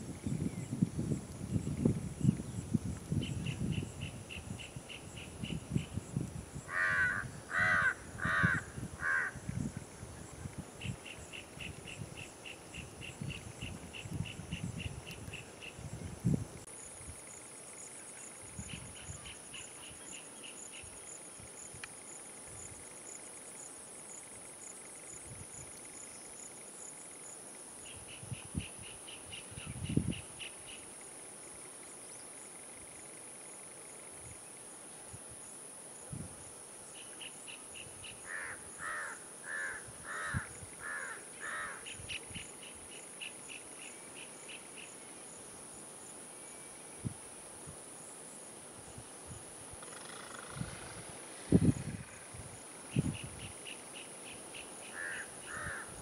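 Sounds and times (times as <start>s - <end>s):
crickets chirring: 0.0s - 56.0s.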